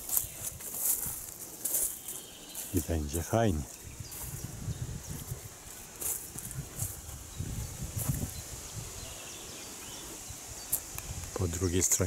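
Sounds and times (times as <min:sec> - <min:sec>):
soft footsteps: 0:00.0 - 0:08.4
rustling of plants: 0:00.0 - 0:12.0
low rumbles on microphone: 0:03.9 - 0:05.6, 0:06.4 - 0:09.0.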